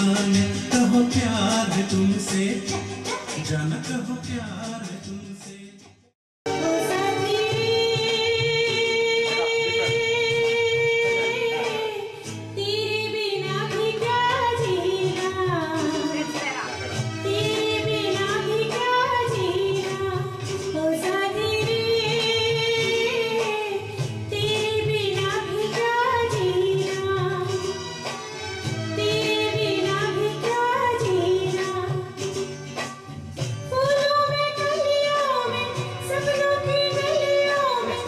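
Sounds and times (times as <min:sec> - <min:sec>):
instrumental accompaniment: 0:00.0 - 0:38.0
woman singing into microphone: 0:06.5 - 0:32.5, 0:33.5 - 0:38.0.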